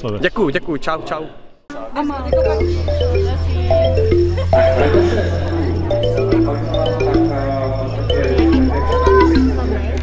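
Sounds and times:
held bass note: 2.1s - 10.0s
descending note runs: 2.2s - 10.0s.

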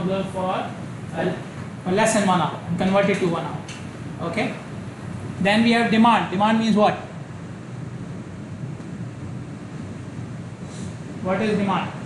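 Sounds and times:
steady hiss with room noise: 0.0s - 12.0s.

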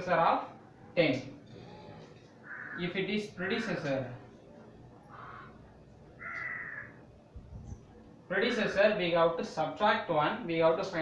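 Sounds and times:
crow cawing: 2.4s - 3.9s, 5.1s - 5.6s, 6.2s - 7.0s.

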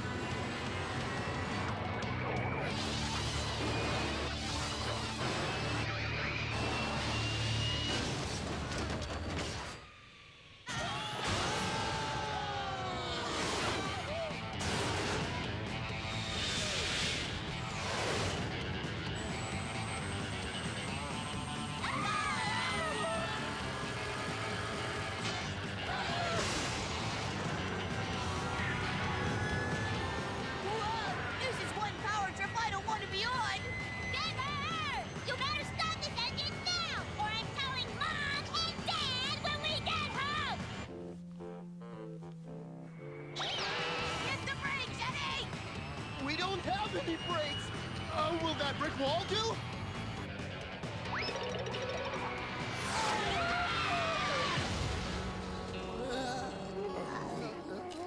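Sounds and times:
lively cartoon background music: 0.0s - 9.8s, 10.7s - 58.0s
gliding falling effect tones: 51.1s - 54.7s.

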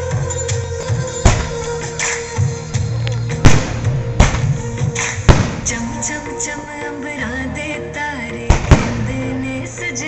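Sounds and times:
music with singing: 0.0s - 10.0s
firework bangs: 3.4s - 6.0s, 8.5s - 9.3s.

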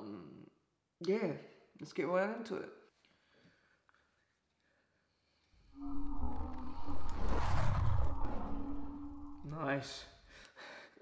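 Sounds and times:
hissing swell: 5.6s - 9.6s
low rumbling drone: 5.6s - 9.6s.

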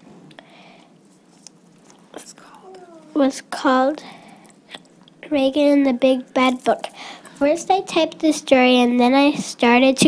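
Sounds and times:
faint whispering: 2.1s - 3.2s.

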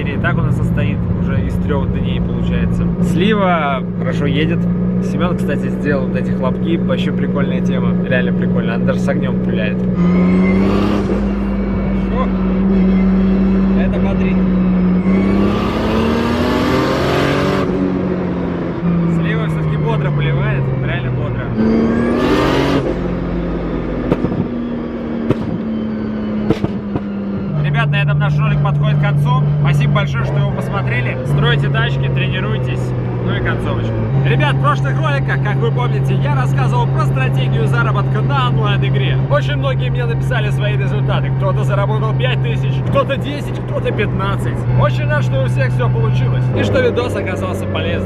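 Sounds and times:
car engine revving: 0.0s - 48.0s
exhaust pops and crackles: 24.0s - 24.6s, 25.2s - 25.7s, 26.4s - 27.2s.

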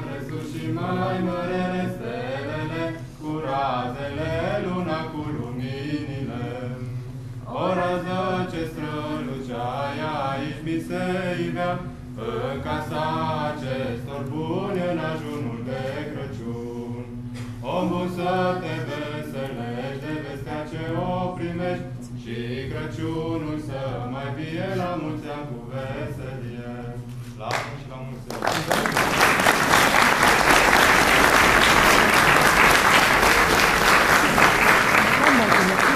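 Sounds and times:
voices singing a carol: 0.0s - 27.5s.

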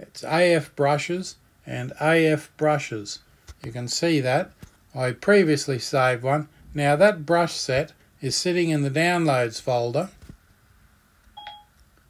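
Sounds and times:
two-tone electronic beep: 11.4s - 11.7s.

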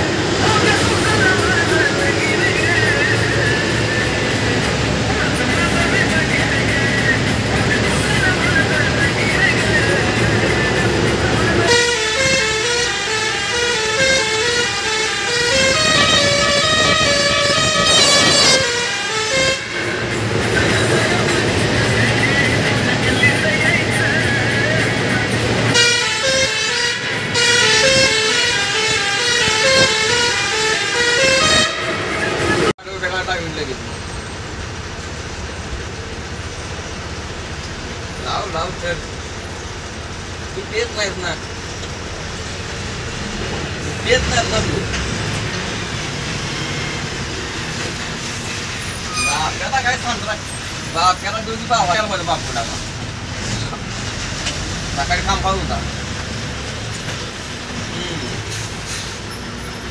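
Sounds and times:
bus engine rumble: 0.0s - 59.9s
road noise: 0.0s - 59.9s
musical bus horn tune: 8.6s - 32.7s.

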